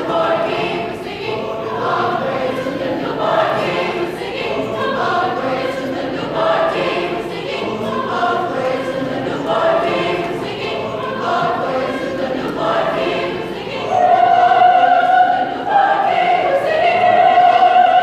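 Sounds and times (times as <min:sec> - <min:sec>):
children's choir singing: 0:00.0 - 0:18.0.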